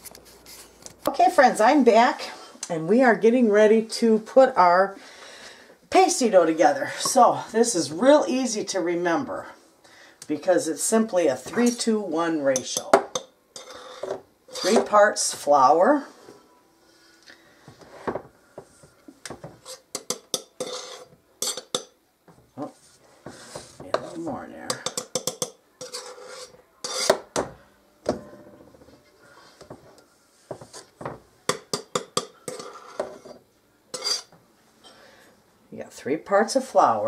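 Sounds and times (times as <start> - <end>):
utensils clinking and scraping in bowl: 11.5 - 15.1, 19.5 - 21.9, 22.6 - 27.4, 28.3 - 34.3.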